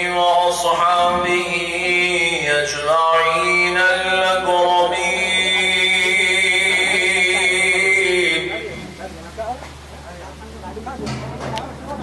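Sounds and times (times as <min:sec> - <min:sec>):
man chanting melodically: 0:00.0 - 0:09.0.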